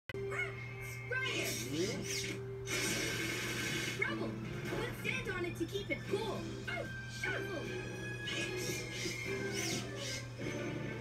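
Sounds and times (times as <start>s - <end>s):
background music: 0.2s - 11.0s
cartoon water spray hiss: 2.7s - 4.0s.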